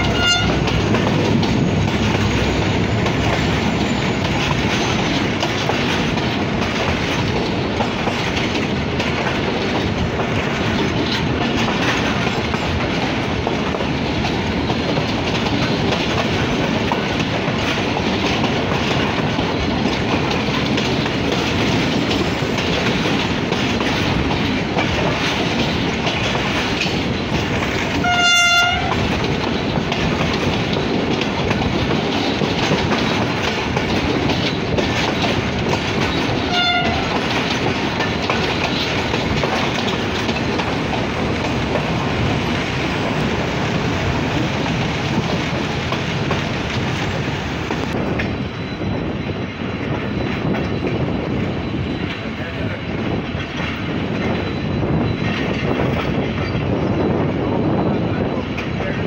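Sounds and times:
train horn blast: 0:00.0 - 0:00.8, 0:28.0 - 0:29.0, 0:36.5 - 0:37.2
locomotive rumbling on rails: 0:00.0 - 0:59.0.

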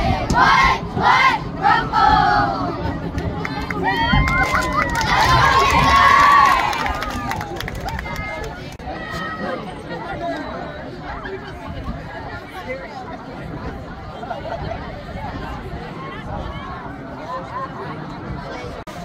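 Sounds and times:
cheerleaders chanting in unison: 0:00.0 - 0:02.9
crowd shouting and cheering: 0:00.0 - 0:11.5
crowd chatter: 0:00.0 - 0:19.0.

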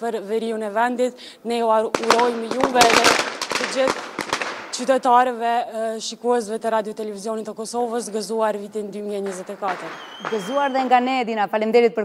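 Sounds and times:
firecrackers banging: 0:01.8 - 0:05.6, 0:09.0 - 0:11.2.

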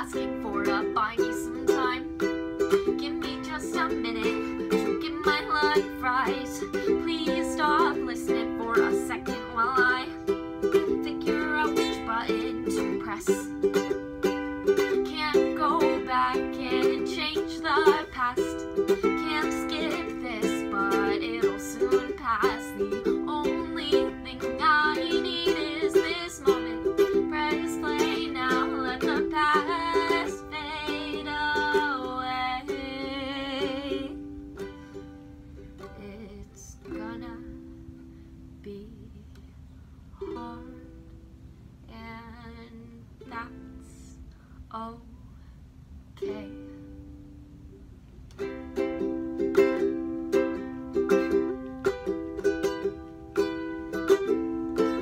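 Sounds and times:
woman singing with vibrato: 0:00.0 - 0:34.4, 0:35.8 - 0:37.8, 0:38.6 - 0:39.4, 0:40.2 - 0:41.0, 0:41.9 - 0:45.2, 0:46.2 - 0:46.9
strummed ukulele: 0:00.0 - 0:44.9, 0:46.1 - 0:55.0.

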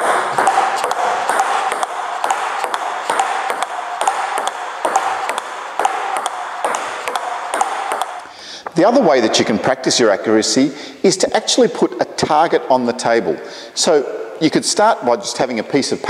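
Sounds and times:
ball bouncing on table: 0:00.0 - 0:08.8
ball clicking off bats: 0:00.0 - 0:08.8.

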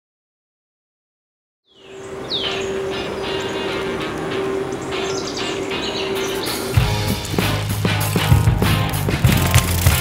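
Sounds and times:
birds chirping: 0:01.7 - 0:10.0
held note of background music: 0:01.8 - 0:10.0.

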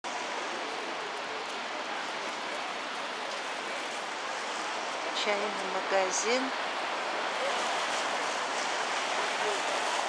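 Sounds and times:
distant traffic hiss: 0:00.1 - 0:10.0.

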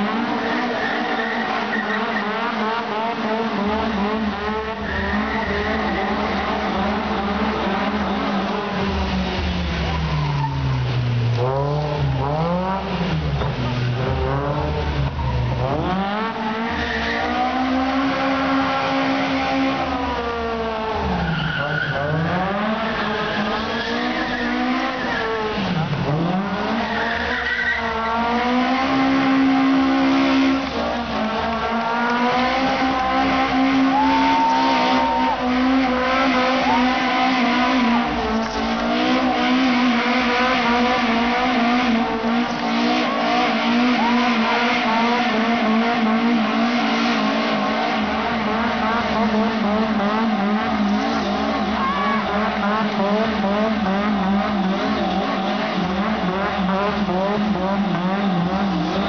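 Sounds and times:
car engine revving hard: 0:00.0 - 0:59.0.

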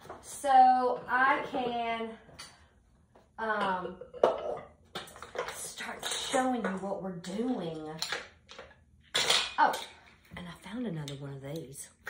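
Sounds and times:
pottery dishes clinking: 0:03.5 - 0:05.4
dishes knocking and clattering: 0:03.5 - 0:06.9, 0:08.0 - 0:10.1.

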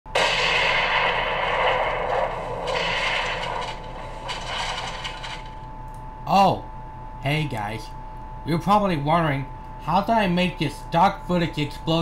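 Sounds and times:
explosion blast and rumble: 0:00.1 - 0:05.7.

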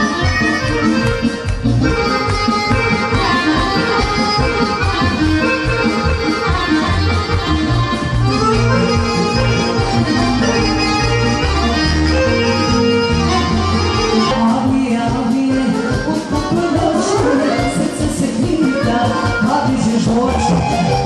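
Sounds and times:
accordion-led folk band: 0:00.0 - 0:21.0.

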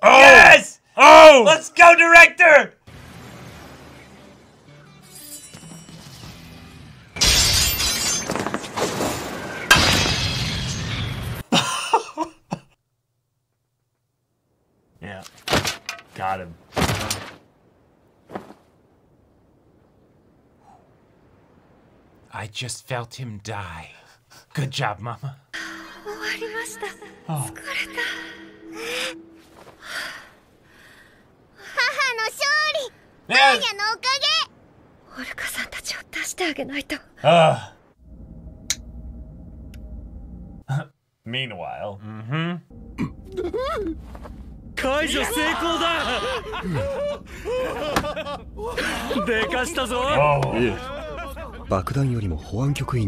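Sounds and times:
loud shattering crash: 0:07.2 - 0:11.4, 0:43.5 - 0:51.7
faint music: 0:25.6 - 0:30.3
faint low hum: 0:38.0 - 0:53.0.

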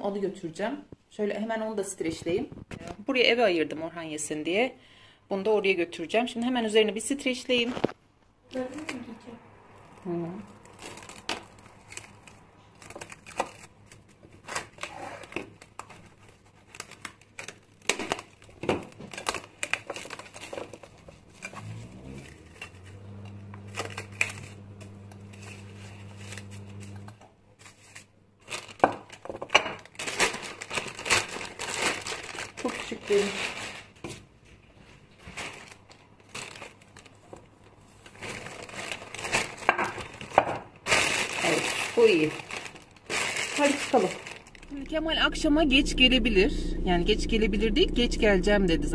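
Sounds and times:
plastic crinkling and rustling: 0:09.8 - 0:21.8, 0:22.4 - 0:45.0
low hum: 0:21.5 - 0:27.1, 0:44.5 - 0:48.9.

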